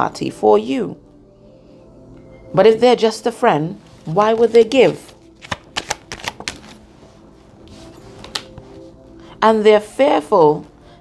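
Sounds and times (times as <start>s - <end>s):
cards clicking and snapping: 5.4s - 6.8s.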